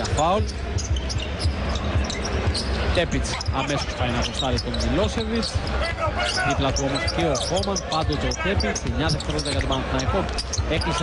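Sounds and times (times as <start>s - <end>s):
shoes squeaking: 0.0s - 11.0s.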